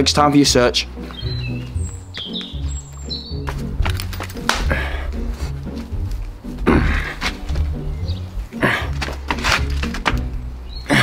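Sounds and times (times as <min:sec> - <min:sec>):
background music with bass line: 0:00.0 - 0:11.0
birds chirping: 0:00.0 - 0:11.0.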